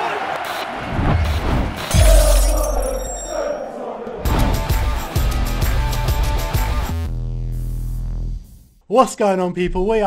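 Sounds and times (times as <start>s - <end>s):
impact hits: 1.2s - 3.6s
shattering effect: 1.9s - 3.6s.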